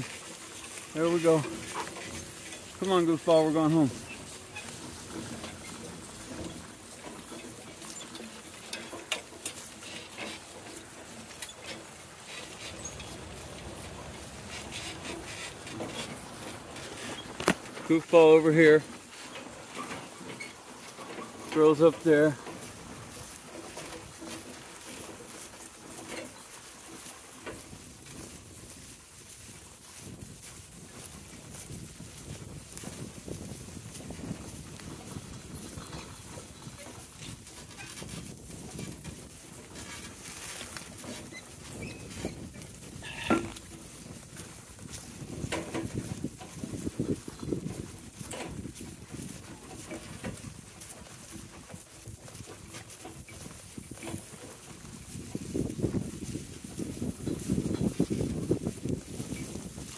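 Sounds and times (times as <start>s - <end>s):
hooves and wheels rustling in grass: 0.0s - 59.9s.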